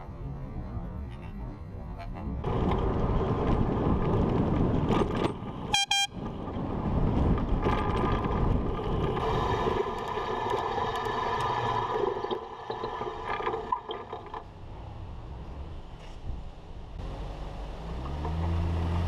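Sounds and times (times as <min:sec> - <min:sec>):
road rumble: 0:00.0 - 0:19.0
wind: 0:00.0 - 0:19.0
bicycle air horn blast: 0:05.7 - 0:06.2.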